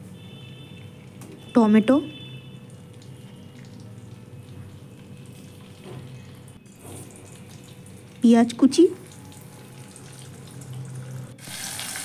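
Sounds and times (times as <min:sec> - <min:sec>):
vegetables sizzling in hot oil: 0:10.0 - 0:12.0.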